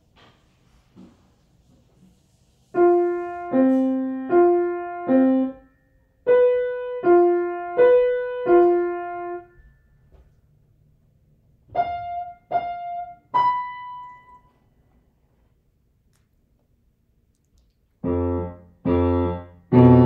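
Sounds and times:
grand piano played slowly: 0:02.8 - 0:09.8, 0:11.7 - 0:14.6, 0:18.0 - 0:20.0.

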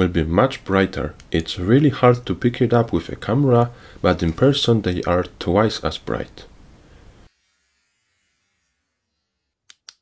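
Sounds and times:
faint room hiss: 0:00.0 - 0:09.7.

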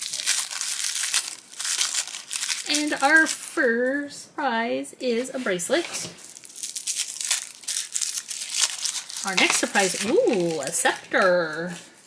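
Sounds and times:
crinkly wrapper crackling: 0:00.0 - 0:03.4, 0:05.7 - 0:12.0.

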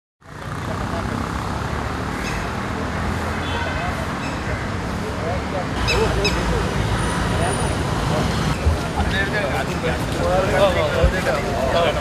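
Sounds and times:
motor vehicle rumbling: 0:00.2 - 0:12.0
road traffic: 0:00.2 - 0:12.0.

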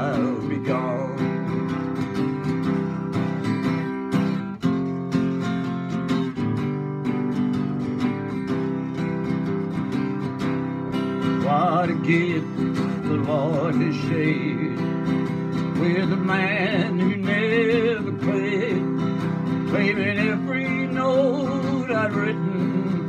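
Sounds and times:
man singing: 0:00.0 - 0:02.5, 0:11.1 - 0:23.0
acoustic guitar strummed: 0:00.0 - 0:23.0.

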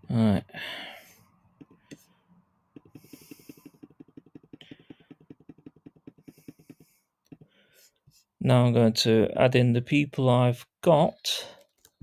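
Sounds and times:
computer mouse clicking: 0:02.8 - 0:07.4.

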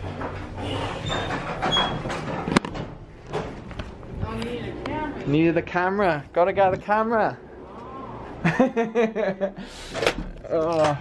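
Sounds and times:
lift doors sliding: 0:00.0 - 0:03.6.

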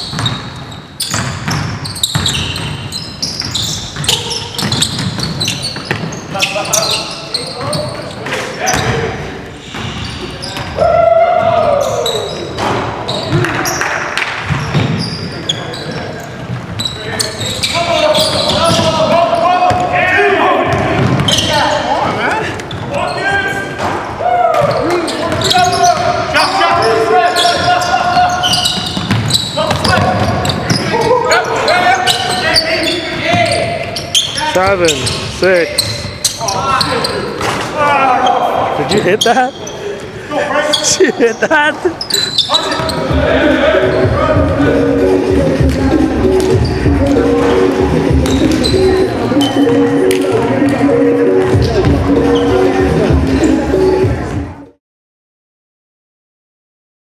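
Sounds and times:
basketballs bouncing on hardwood: 0:00.0 - 0:00.4, 0:01.0 - 0:06.2, 0:14.4 - 0:15.0, 0:18.3 - 0:20.0, 0:20.6 - 0:21.5, 0:27.6 - 0:31.0
players shouting: 0:10.0 - 0:13.8, 0:17.4 - 0:35.1, 0:35.8 - 0:53.0.

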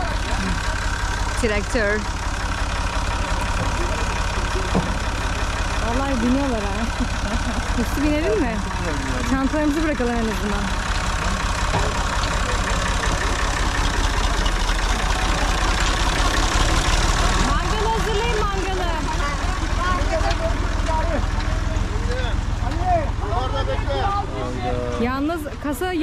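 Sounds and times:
tractor diesel engine idling: 0:00.0 - 0:26.0.

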